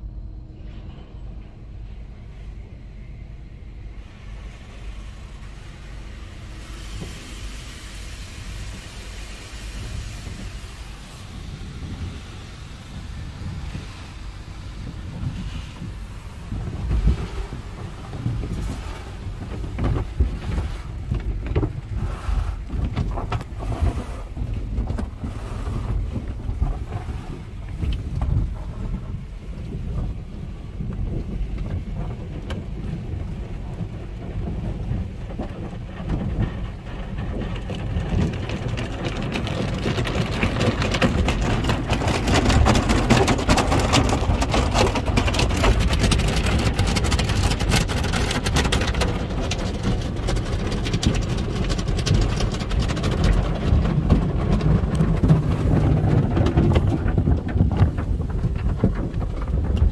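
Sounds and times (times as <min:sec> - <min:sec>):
car wash low rumble: 0:00.0 - 0:59.9.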